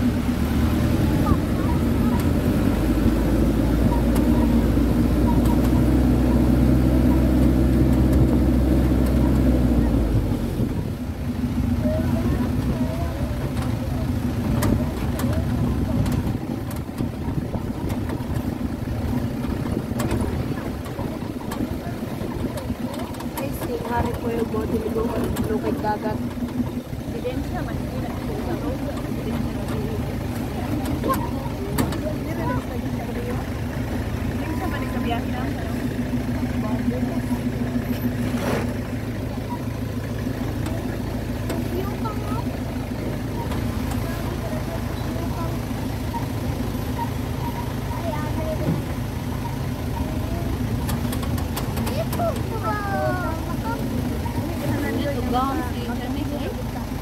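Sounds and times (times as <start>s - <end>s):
faint voices: 0.0s - 57.0s
motorcycle engines running: 0.0s - 57.0s.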